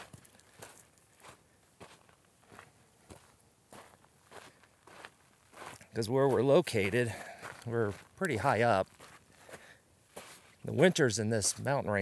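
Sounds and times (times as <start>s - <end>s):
footsteps on gravelly dirt trail: 0.0s - 12.0s.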